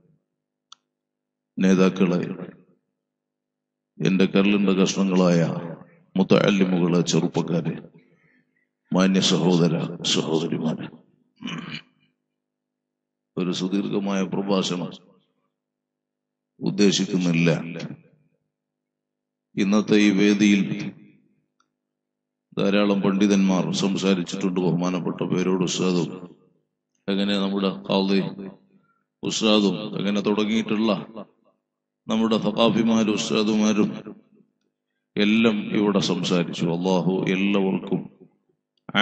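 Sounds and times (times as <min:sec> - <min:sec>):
man chanting: 0:01.6 - 0:02.5, 0:04.0 - 0:07.9, 0:08.9 - 0:11.8, 0:13.4 - 0:15.0, 0:16.6 - 0:18.0, 0:19.6 - 0:20.9, 0:22.6 - 0:26.2, 0:29.2 - 0:31.1, 0:32.1 - 0:34.0, 0:35.2 - 0:38.1
man giving a talk: 0:01.6 - 0:02.5, 0:04.0 - 0:07.9, 0:08.9 - 0:11.8, 0:13.4 - 0:15.0, 0:16.6 - 0:18.0, 0:19.6 - 0:21.0, 0:22.6 - 0:26.2, 0:27.1 - 0:28.4, 0:29.2 - 0:31.1, 0:32.1 - 0:34.0, 0:35.2 - 0:38.1.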